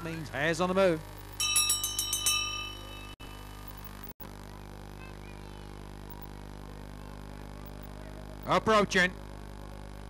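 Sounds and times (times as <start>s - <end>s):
steady low hum: 0.0s - 10.0s
bell ringing in quick strokes: 1.4s - 3.3s.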